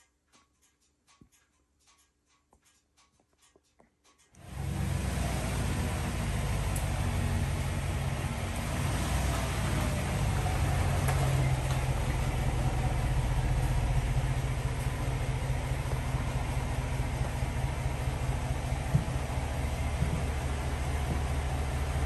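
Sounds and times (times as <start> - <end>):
low engine rumble: 4.4 - 22.0.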